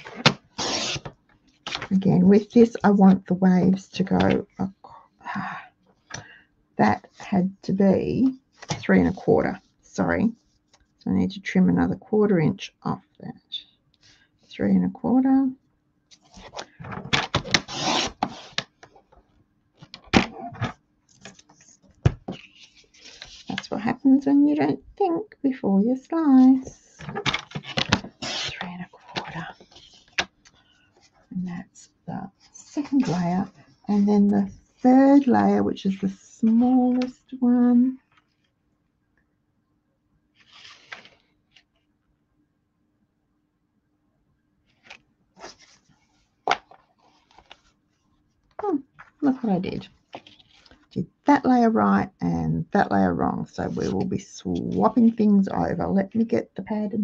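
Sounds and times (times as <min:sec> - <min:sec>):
paper sliding and rustling: 0:00.0 - 0:02.0, 0:16.1 - 0:18.7, 0:22.3 - 0:23.6, 0:27.0 - 0:31.1, 0:40.4 - 0:41.7, 0:44.7 - 0:47.8
blade slicing paper: 0:17.4 - 0:18.6.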